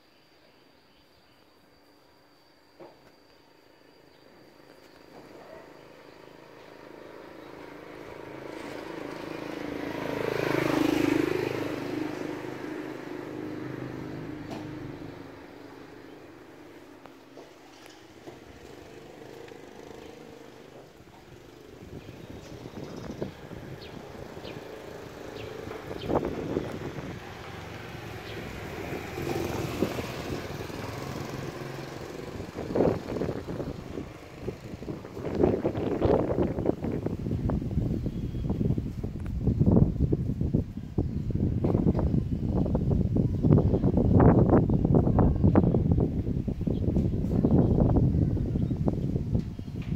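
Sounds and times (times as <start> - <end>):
vehicle engine passing by: 5.7 - 40.7.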